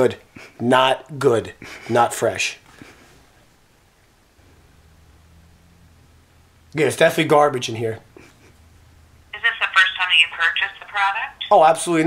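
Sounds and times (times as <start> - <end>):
voice through phone speaker: 9.4 - 11.7.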